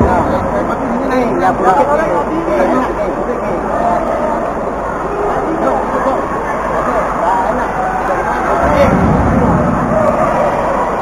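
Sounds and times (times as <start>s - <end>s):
hubbub of many voices: 0.0s - 11.0s.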